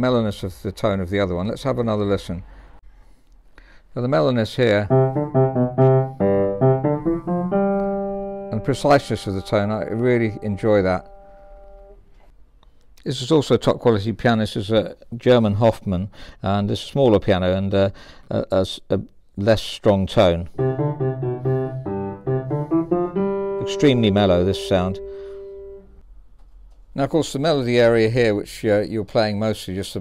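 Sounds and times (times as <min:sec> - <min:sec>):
upright piano notes: 0:04.9 - 0:11.8, 0:20.6 - 0:25.9.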